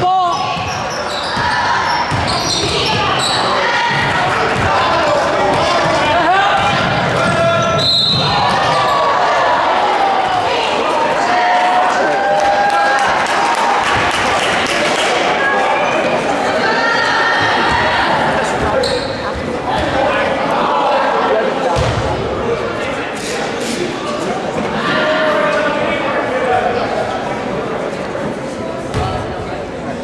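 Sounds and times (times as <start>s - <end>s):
voices calling out and cheering: 0.0s - 30.0s.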